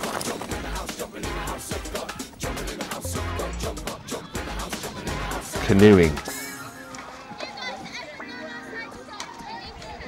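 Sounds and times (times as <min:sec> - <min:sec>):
background music: 0:00.0 - 0:10.0
young people calling and chattering: 0:00.1 - 0:10.0.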